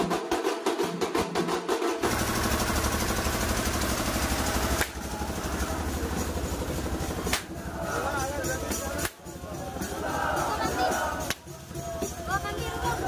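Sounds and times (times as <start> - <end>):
drums beaten in fast rhythm: 0.0 - 13.0.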